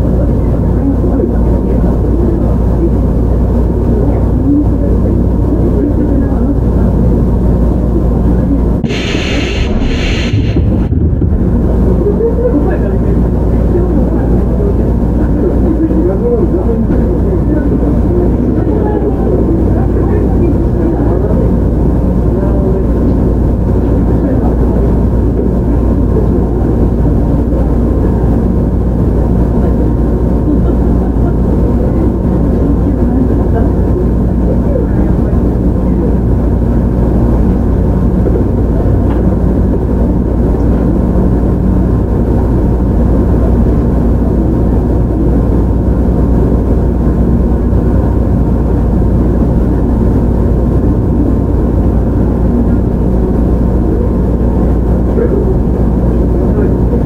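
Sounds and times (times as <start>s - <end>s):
train wheels rumbling on rails: 8.8s - 14.0s.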